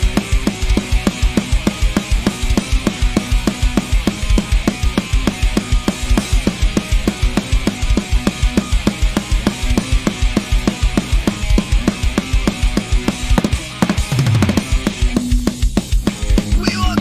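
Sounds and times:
fast steady drumming: 0.0 - 17.0
loud rock music: 0.0 - 17.0.

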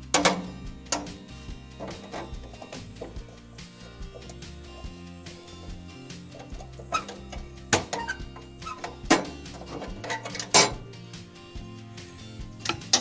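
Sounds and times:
background music: 0.0 - 13.0
pliers clicking on metal: 6.1 - 10.8, 12.6 - 13.0.

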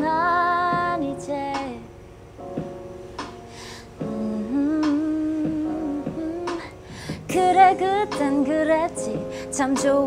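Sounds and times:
instrumental backing: 0.0 - 10.0.

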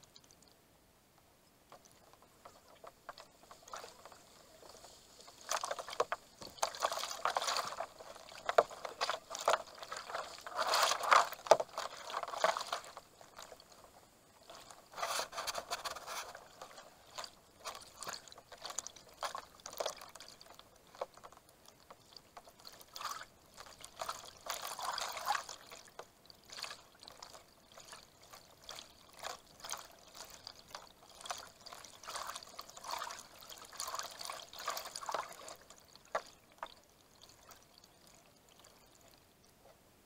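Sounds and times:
water splashing against kayak: 1.7 - 39.2.

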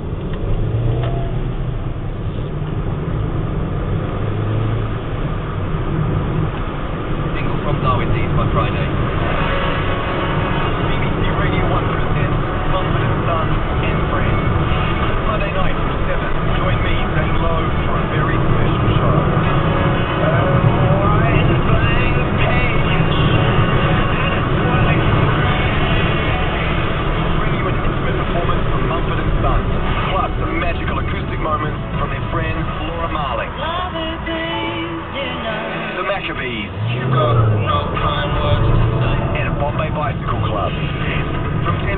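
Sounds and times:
engine and road rumble: 0.0 - 41.9
radio speech: 7.2 - 41.9.

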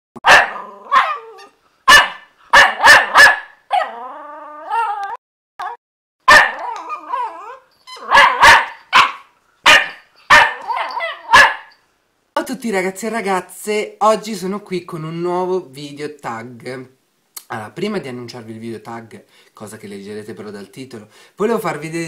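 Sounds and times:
puppy barking: 0.2 - 4.0, 6.3 - 11.8
puppy drawn-out cry: 0.2 - 11.7.

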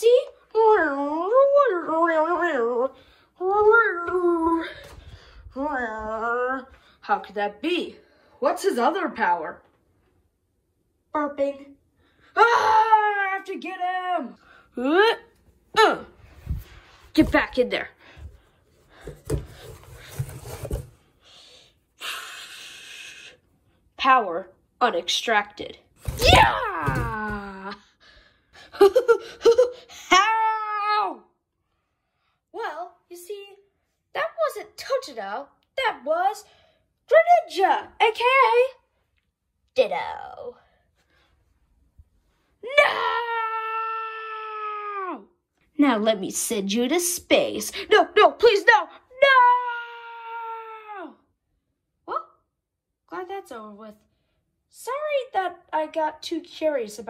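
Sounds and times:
person crying out no: 42.7 - 45.3.

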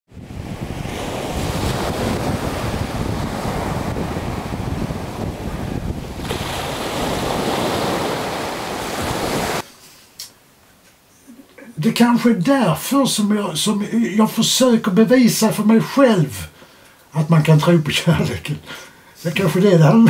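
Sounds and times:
surf washing up beach: 0.1 - 9.7.

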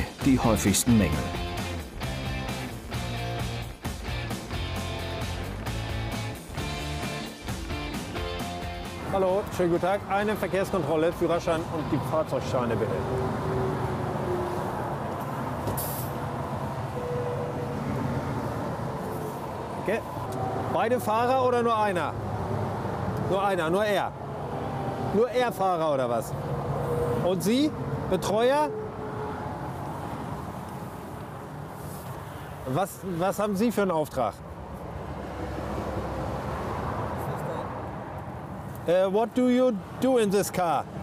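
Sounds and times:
motorway traffic passing: 0.0 - 41.0
brief hiss: 15.7 - 16.2.

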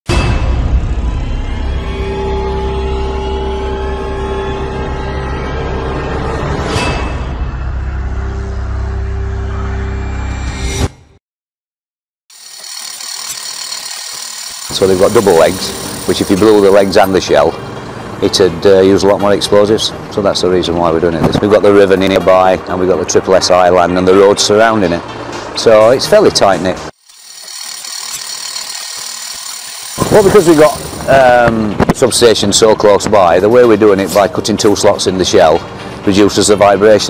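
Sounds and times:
hammer drill boring into concrete: 12.3 - 17.4, 27.0 - 31.4.

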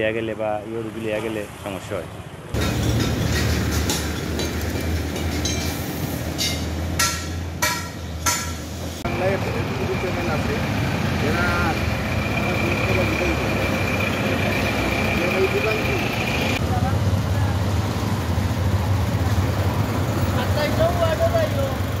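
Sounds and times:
street traffic: 0.0 - 22.0.

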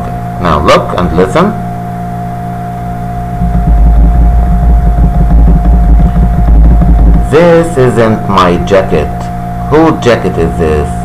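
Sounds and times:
electrical hum with whine: 0.0 - 11.0
loud low rumble: 3.0 - 9.7.

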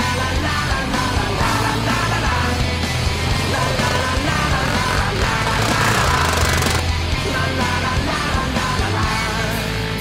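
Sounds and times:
loud guitar-driven rock music: 0.0 - 10.0.

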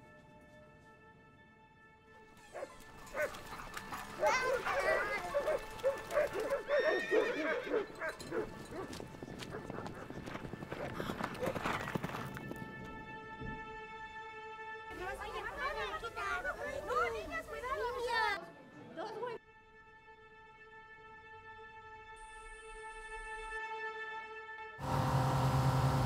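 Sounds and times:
hoofbeats: 2.3 - 13.8.

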